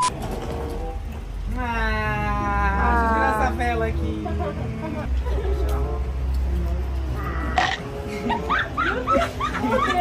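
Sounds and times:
high-pitched laughter: 8.1 - 10.0.

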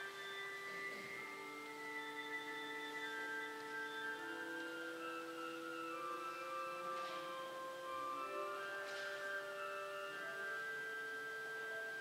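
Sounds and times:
pipe organ chords: 0.0 - 12.0.

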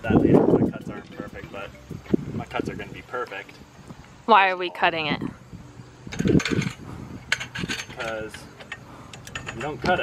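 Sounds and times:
metal ladder clicking and rattling: 6.1 - 10.0.

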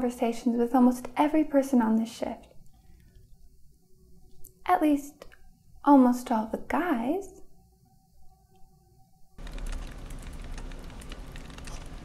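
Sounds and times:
dense crackling clicking noise: 9.4 - 12.0.

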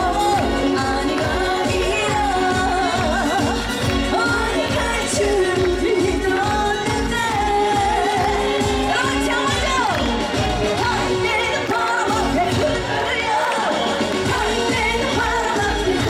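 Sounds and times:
band backing with steady beat: 0.0 - 16.0
woman singing into a microphone: 0.0 - 16.0.

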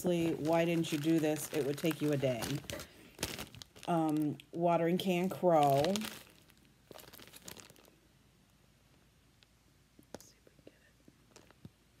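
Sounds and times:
plastic bag crinkling: 0.0 - 8.0, 11.3 - 11.7.

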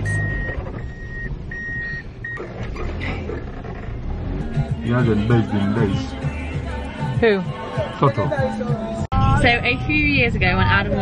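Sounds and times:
car cabin road rumble: 0.0 - 7.3, 8.3 - 11.0.

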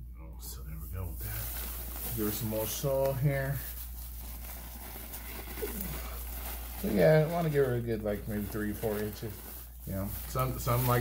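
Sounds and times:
plastic bag crinkling: 1.2 - 11.0.

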